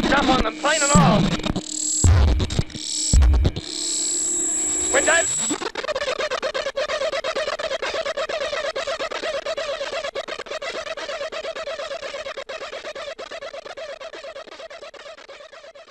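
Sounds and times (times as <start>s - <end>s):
crackling synthesizer clicks: 0.0s - 5.6s
wavering synthesizer tone: 0.0s - 5.6s.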